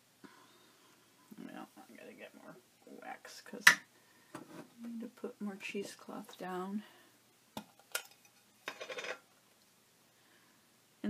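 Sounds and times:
small metallic clinks and scrapes: 0:07.7 - 0:09.2.

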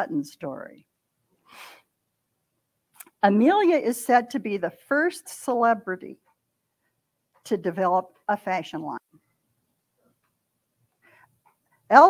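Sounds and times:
woman speaking: 0:00.0 - 0:00.8, 0:03.0 - 0:06.2, 0:07.5 - 0:09.0.

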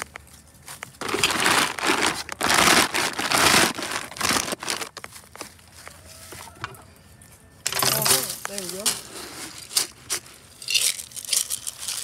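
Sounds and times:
metal scoop digging feed pellets: 0:01.0 - 0:04.9, 0:07.7 - 0:12.0.

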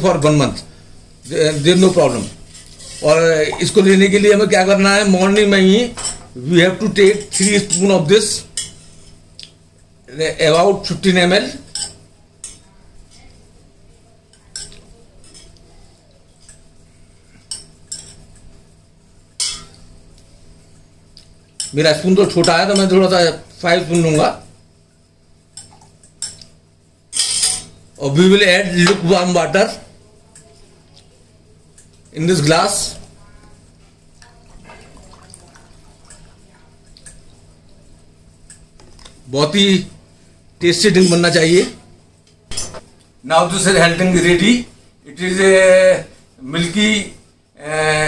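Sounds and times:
water dripping: 0:34.2 - 0:37.4
water pouring into a glass: 0:34.5 - 0:36.4.

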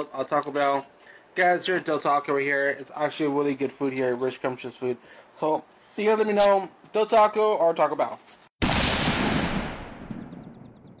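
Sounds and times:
boom-like hit: 0:08.6 - 0:11.0.

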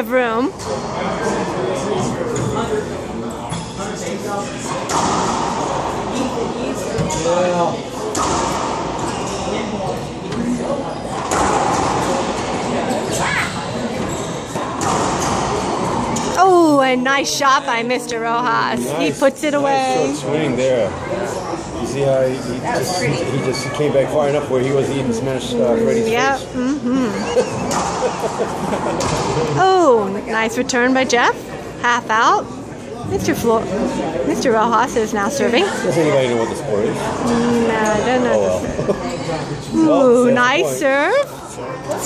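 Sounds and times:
murmur of voices: 0:00.0 - 0:42.0
racquetball hits off racquets and walls: 0:04.7 - 0:05.9, 0:08.1 - 0:09.4, 0:11.2 - 0:12.9, 0:14.0 - 0:16.3.

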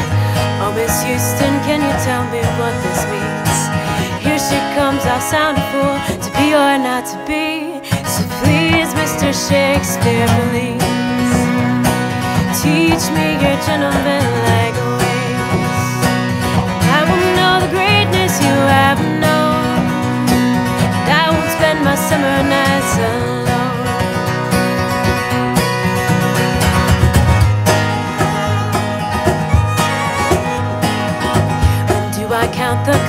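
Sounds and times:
person singing: 0:00.0 - 0:20.4, 0:21.0 - 0:24.5, 0:31.3 - 0:33.0
fiddle melody: 0:00.0 - 0:33.0
strummed acoustic guitar: 0:00.0 - 0:33.0.

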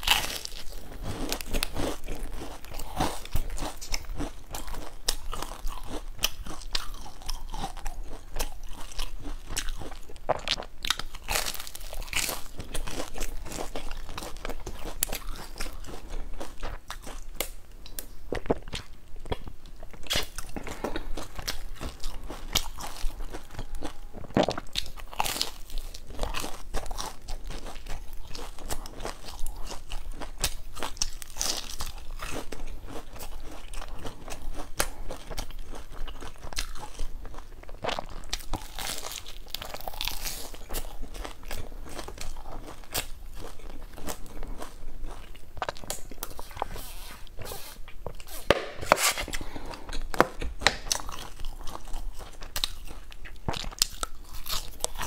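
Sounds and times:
person chewing crusty bread: 0:00.0 - 0:55.0.

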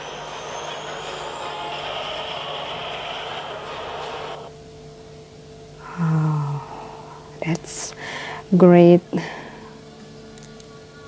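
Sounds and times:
heavy machinery rushing: 0:00.0 - 0:04.5
faint steady hum: 0:00.0 - 0:11.0.

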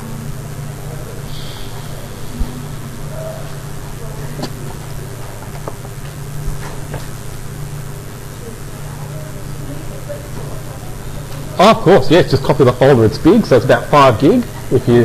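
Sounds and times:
low electrical hum and hiss: 0:00.0 - 0:15.0.

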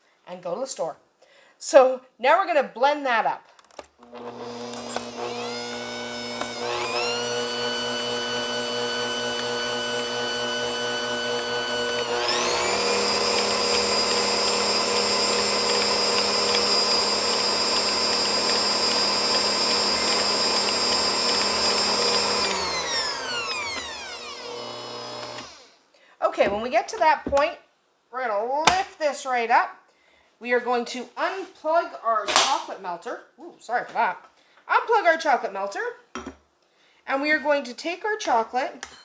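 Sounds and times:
mixer motor whine: 0:04.0 - 0:25.7.

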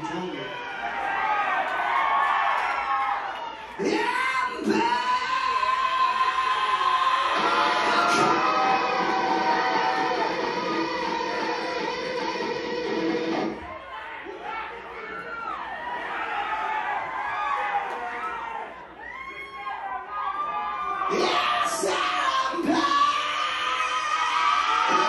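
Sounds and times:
crowd cheering and shouting: 0:00.0 - 0:25.0
shrill screams: 0:00.4 - 0:11.5, 0:13.5 - 0:25.0
live metal band: 0:07.3 - 0:13.6.

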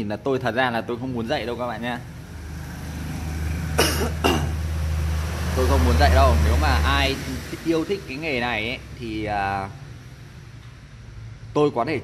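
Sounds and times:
man coughing: 0:03.8 - 0:04.6.

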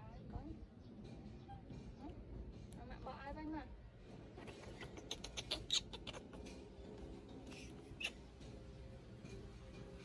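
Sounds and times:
baby monkey squeaking: 0:04.4 - 0:06.6, 0:07.5 - 0:08.4.

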